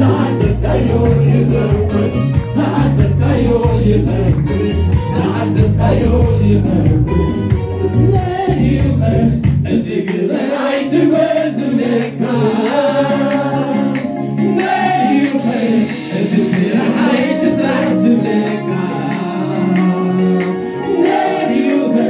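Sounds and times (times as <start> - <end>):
congregation singing: 0.0 - 22.0
keyboard accompaniment: 0.0 - 22.0.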